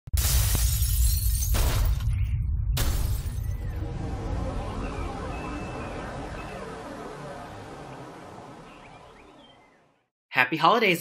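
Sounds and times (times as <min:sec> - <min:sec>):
deep steady rumble: 0:01.9 - 0:09.8
sudden bursts of noise: 0:02.8 - 0:10.0.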